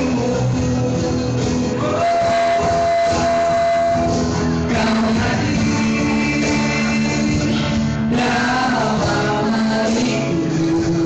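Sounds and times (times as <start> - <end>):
acoustic guitar accompaniment: 0.0 - 11.0
microphone feedback howl: 1.9 - 4.2.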